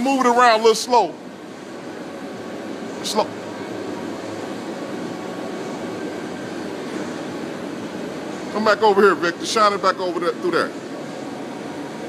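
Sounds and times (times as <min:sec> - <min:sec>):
machinery hum and hiss: 0:00.0 - 0:12.0.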